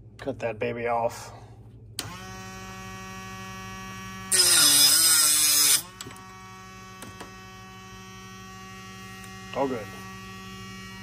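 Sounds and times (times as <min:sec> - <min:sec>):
saw motor humming: 0:02.0 - 0:11.0
saw grinding through arrow shaft: 0:04.3 - 0:05.9.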